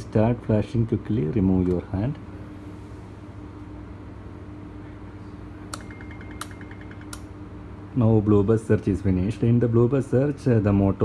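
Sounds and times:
control unit low hum: 0.0s - 11.0s
sharp relay clicks: 5.7s - 7.3s.

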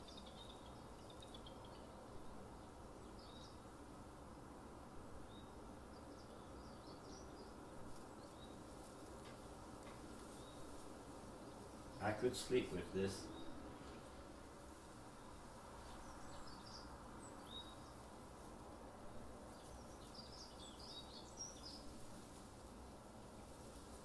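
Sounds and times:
faint room hum and hiss: 0.0s - 24.0s.

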